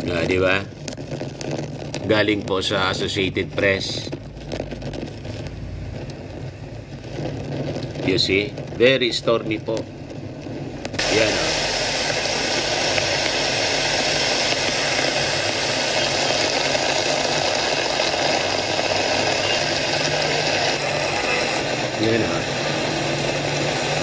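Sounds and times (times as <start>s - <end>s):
heavy rain: 0.0s - 24.0s.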